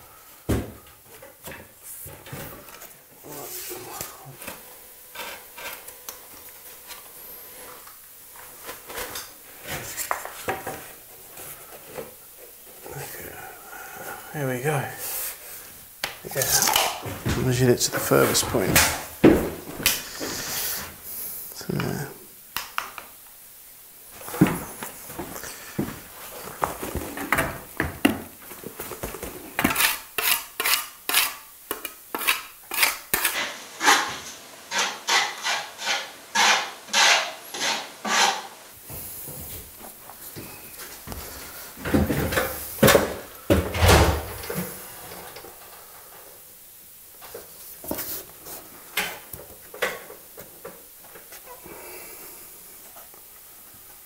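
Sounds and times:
handsaw cutting: 34.7 - 38.5.

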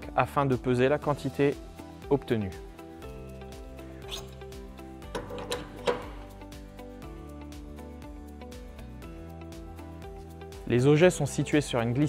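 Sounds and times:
background music held notes: 0.0 - 12.0.

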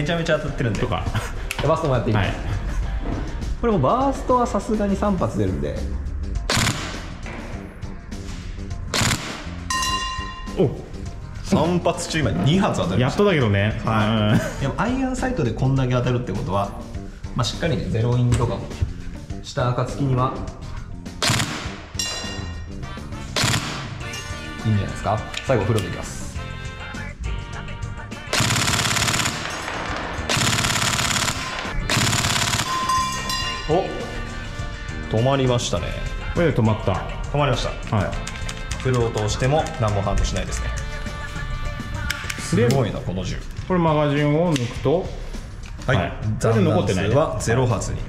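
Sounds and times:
airsoft gun burst: 6.5 - 7.0, 8.9 - 9.5, 21.2 - 21.7, 23.4 - 23.9, 28.3 - 32.9.

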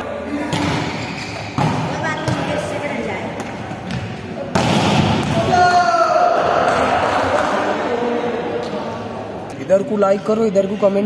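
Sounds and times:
faint volleyball hits: 3.3 - 5.7.

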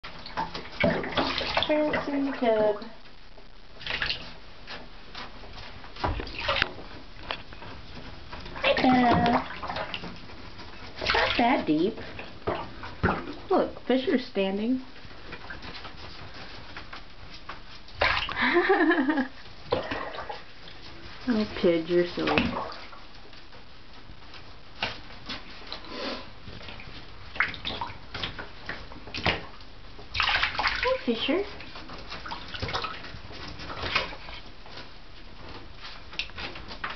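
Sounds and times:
light water splashes and taps: 0.0 - 3.0, 6.0 - 13.5, 15.0 - 23.5, 26.6 - 34.9
faint steady hiss: 0.0 - 36.9.

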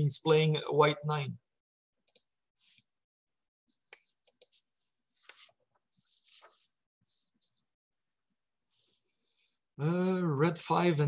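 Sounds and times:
computer mouse clicks: 2.0 - 2.3, 3.9 - 4.6
soft breaths: 8.6 - 9.8.

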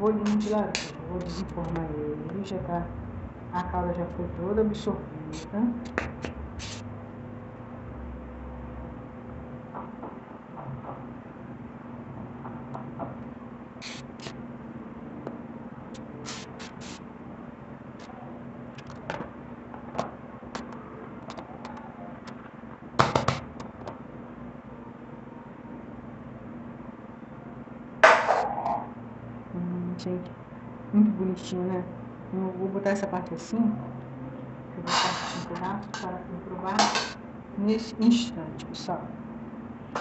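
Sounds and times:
steady low hum: 0.0 - 40.0
utensil scraping metal pan: 34.9 - 35.5.

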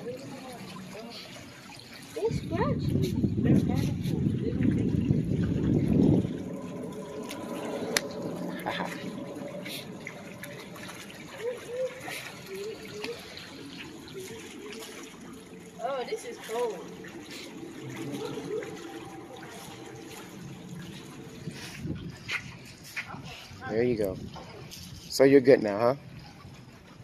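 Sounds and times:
water lapping among rocks: 0.0 - 27.0.

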